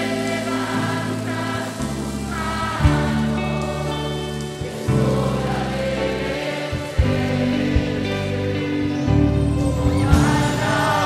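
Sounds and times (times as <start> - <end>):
choir singing a hymn: 0.0 - 11.0
digital piano: 0.0 - 11.0.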